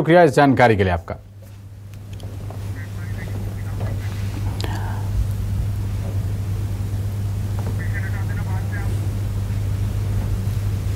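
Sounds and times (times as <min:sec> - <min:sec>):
low hum and rumble: 0:00.6 - 0:10.9
distant voice calling out: 0:02.6 - 0:05.2, 0:07.6 - 0:09.2.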